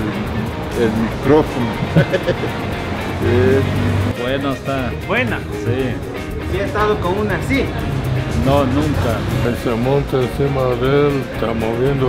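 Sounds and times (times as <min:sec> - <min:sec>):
background music: 0:00.0 - 0:12.0
low rumble of street traffic: 0:00.0 - 0:12.0.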